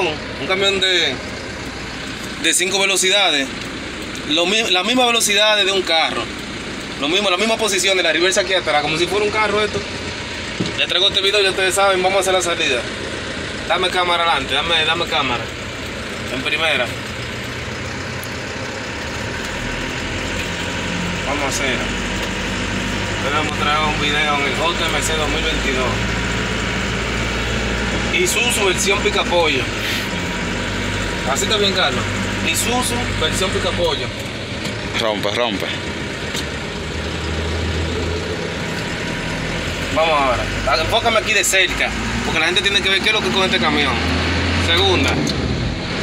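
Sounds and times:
truck engine running: 0:00.0 - 0:46.0.

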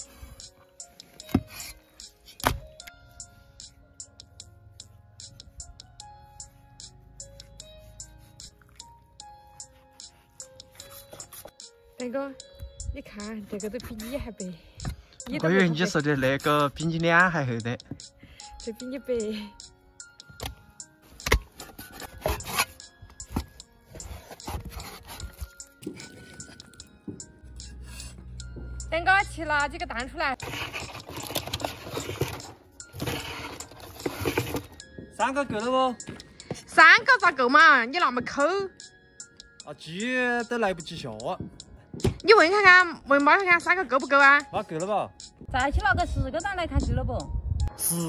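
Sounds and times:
background music: 0:00.0 - 0:48.0.

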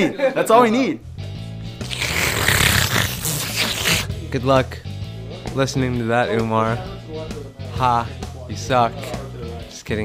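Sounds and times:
background music with low notes: 0:00.0 - 0:10.0
breath blowing into microphone: 0:01.8 - 0:04.1.

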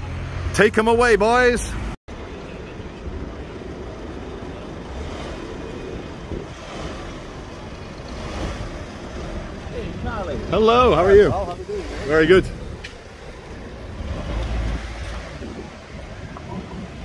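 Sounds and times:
wind buffeting microphone: 0:02.9 - 0:17.0.

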